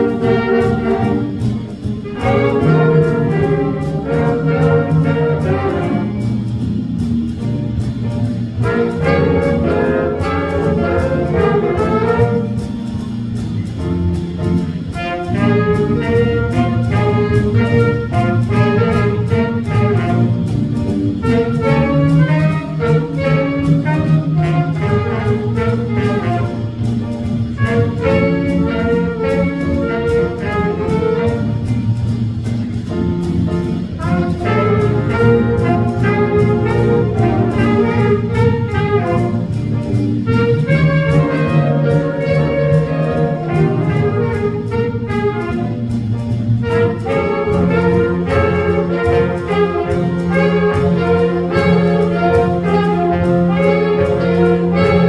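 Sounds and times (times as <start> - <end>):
horn section: 0.0 - 7.4, 8.3 - 12.8, 14.7 - 32.1, 33.3 - 55.0
jazz big band playing: 0.0 - 55.0
steady drum beat: 0.0 - 55.0.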